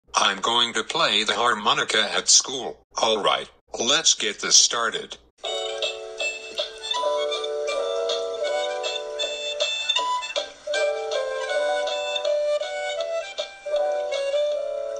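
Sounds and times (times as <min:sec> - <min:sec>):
harmonica playing chords: 0:05.4 - 0:14.9.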